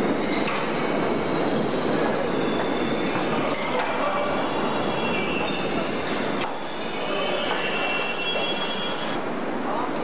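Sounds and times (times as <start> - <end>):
subway train running on rails: 0.0 - 10.0
high-pitched wheel squeal: 3.7 - 5.9, 6.8 - 9.2.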